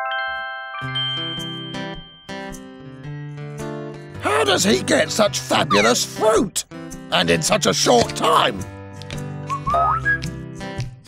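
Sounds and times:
background music: 0.0 - 11.0
whistled notes rising in pitch: 9.5 - 10.3.

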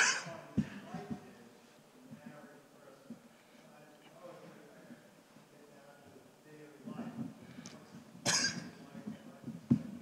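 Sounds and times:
person coughing: 8.2 - 8.7.

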